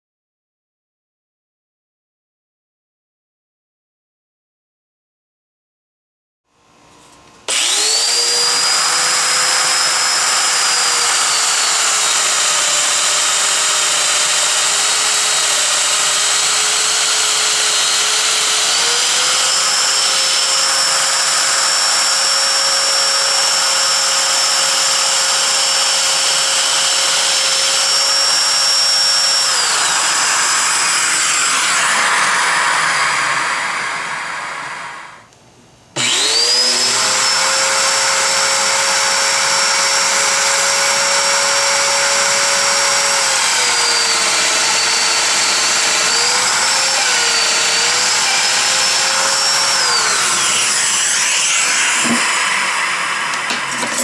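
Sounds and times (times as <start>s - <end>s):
dust extractor suction rush: 7.5s - 23.4s, 29.2s - 35.0s, 42.8s - 53.6s
power tool motor whine: 7.5s - 35.2s, 36.0s - 54.0s.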